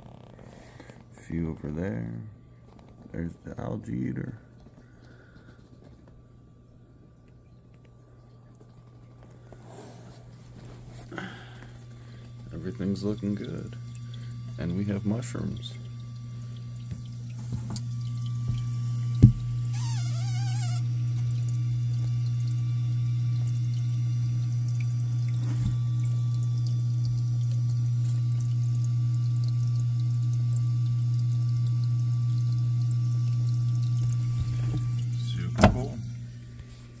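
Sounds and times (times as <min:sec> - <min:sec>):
water pump humming: 0:00.0 - 0:37.0
water flowing: 0:08.0 - 0:37.0
knock: 0:19.2 - 0:19.4.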